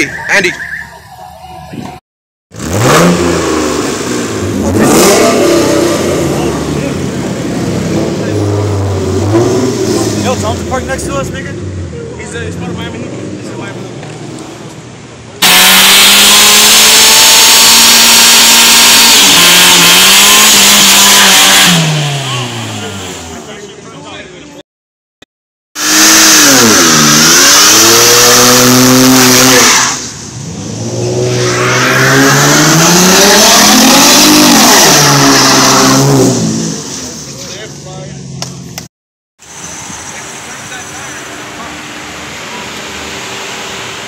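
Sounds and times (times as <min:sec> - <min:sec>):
car engine revving: 0:02.5 - 0:23.8, 0:25.8 - 0:38.8.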